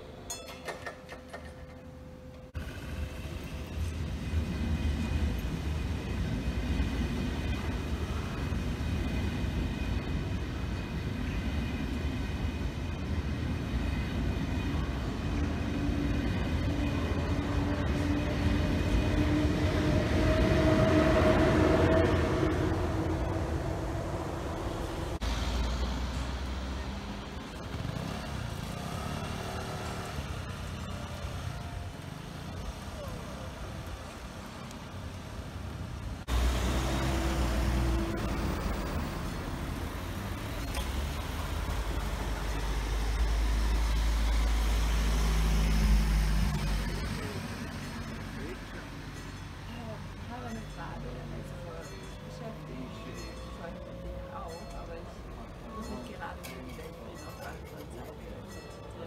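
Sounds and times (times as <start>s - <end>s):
train wheels running on rails: 0.0s - 59.0s.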